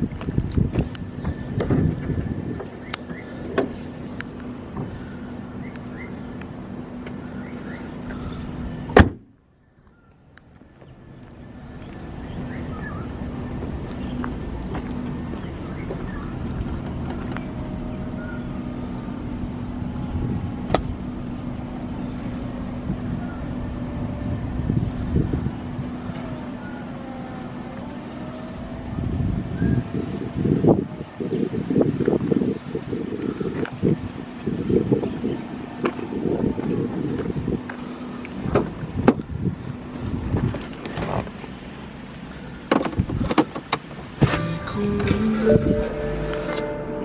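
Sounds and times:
low rumbling: 0.0 - 43.3, 44.0 - 47.0.

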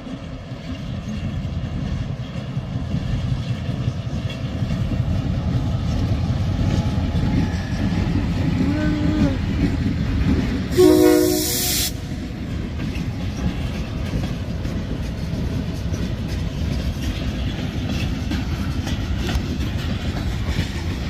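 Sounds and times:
wheels clacking over rail joints: 0.0 - 11.4, 12.0 - 21.0
freight train rumbling past: 0.0 - 21.0
train horn: 10.7 - 12.2.

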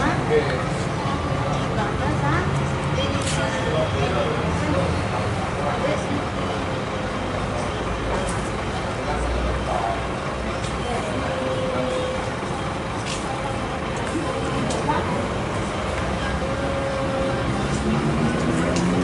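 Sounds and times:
bus engine rumbling: 0.0 - 19.0
voices talking: 0.0 - 19.0.

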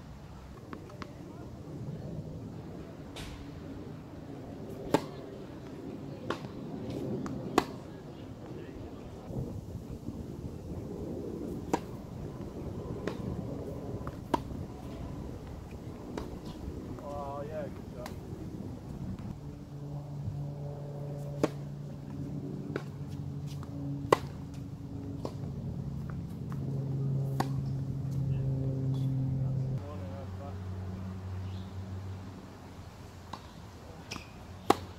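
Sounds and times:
steady low hum: 0.0 - 34.9
tennis ball struck by racket: 4.9 - 5.2, 6.3 - 7.9, 11.6 - 11.9, 14.0 - 15.0, 21.4 - 21.6, 22.7 - 24.5, 27.3 - 27.8, 33.3 - 34.9
tennis ball bouncing on hard court: 14.0 - 14.9.

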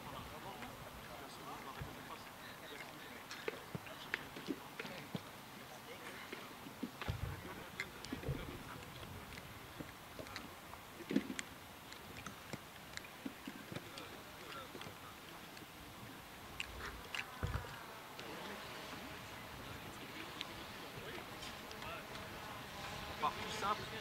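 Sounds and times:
low voices: 13.5 - 24.0.

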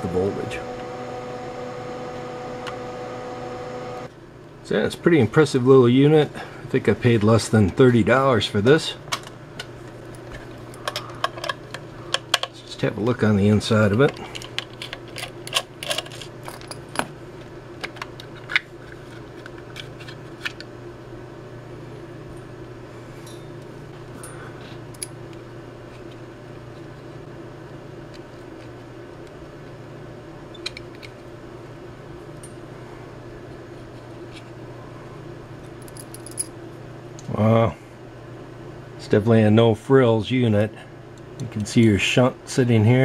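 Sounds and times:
steady low hum: 0.0 - 43.0
screws and plastic parts rattling: 14.0 - 16.8.

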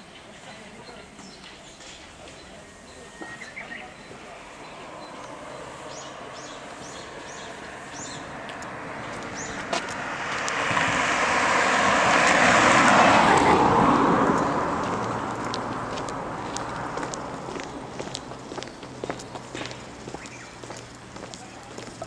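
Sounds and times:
bird chirping: 0.0 - 9.7, 14.3 - 14.8, 17.9 - 22.0
car passing: 2.6 - 22.0.

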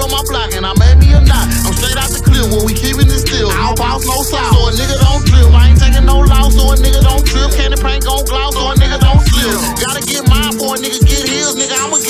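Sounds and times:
deep bass notes dropping in pitch: 0.0 - 10.6
hi-hat ticks: 0.0 - 12.0
person rapping: 0.0 - 12.0.

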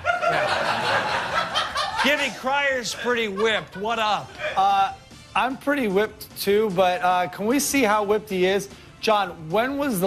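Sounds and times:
studio audience laughing: 0.0 - 4.6.

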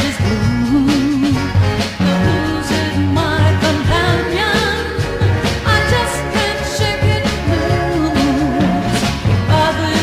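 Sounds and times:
soul music with vocals: 0.0 - 10.0
walking bass line: 0.0 - 10.0.

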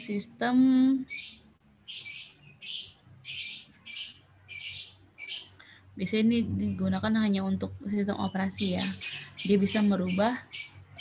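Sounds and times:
bird squawking: 1.1 - 5.6, 8.6 - 11.0.

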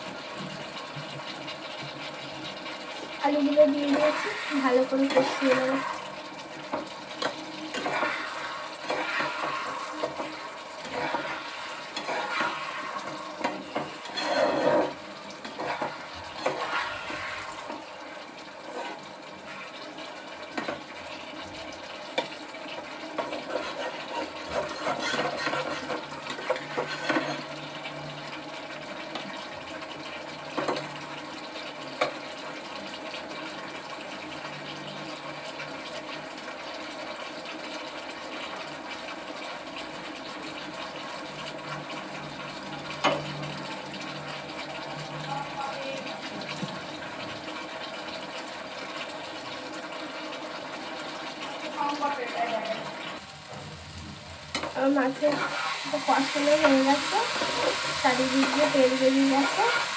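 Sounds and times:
curry simmering hiss: 0.0 - 59.9
spatula scraping pan: 0.4 - 17.9, 18.6 - 28.0, 54.5 - 59.9.

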